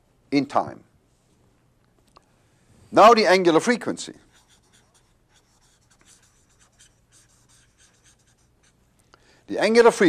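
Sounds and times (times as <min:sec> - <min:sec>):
felt-tip marker writing on paper: 0:04.2 - 0:08.9.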